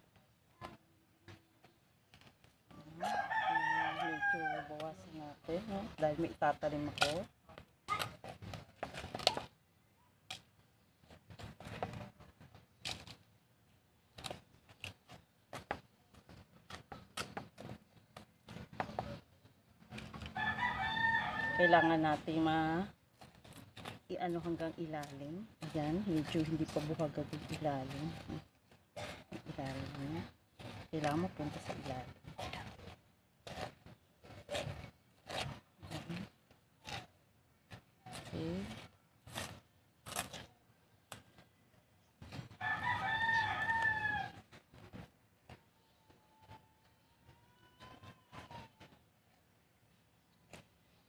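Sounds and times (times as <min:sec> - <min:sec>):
rooster crowing: 0:03.0 - 0:04.8, 0:20.3 - 0:22.0, 0:42.6 - 0:44.4.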